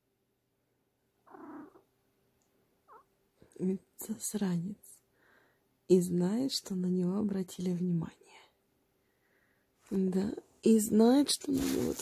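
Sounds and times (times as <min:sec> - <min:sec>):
cat soft vocal sound: 0:01.3 - 0:01.8.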